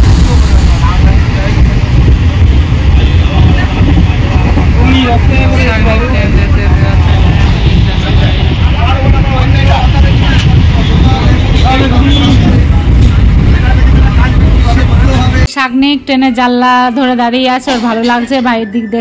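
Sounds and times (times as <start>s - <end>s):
train rumbling on track: 0.0s - 15.5s.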